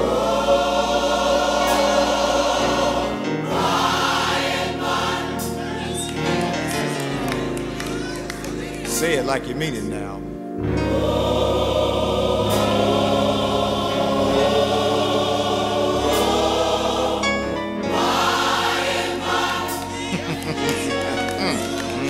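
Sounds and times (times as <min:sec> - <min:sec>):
gospel choir singing: 0:00.0 - 0:09.9, 0:10.6 - 0:22.0.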